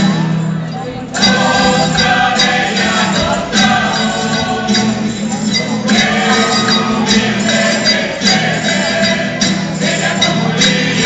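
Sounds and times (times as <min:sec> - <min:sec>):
acoustic guitar: 0:00.0 - 0:11.0
group singing: 0:00.8 - 0:11.0.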